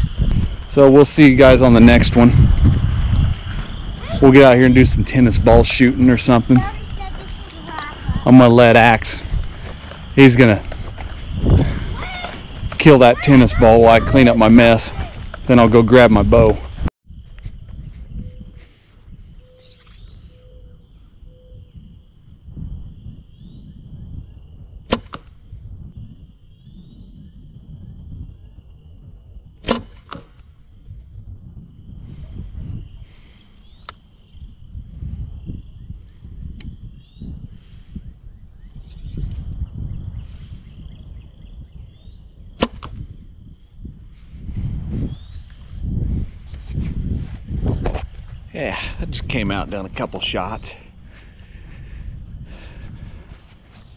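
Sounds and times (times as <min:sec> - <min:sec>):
arrows hitting target cracks: 0:24.9 - 0:25.3, 0:29.6 - 0:30.4, 0:42.6 - 0:43.0.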